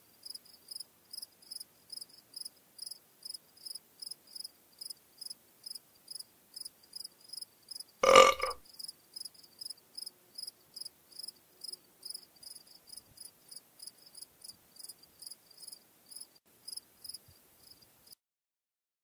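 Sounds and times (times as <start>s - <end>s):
loud burp: 8.0s - 8.6s.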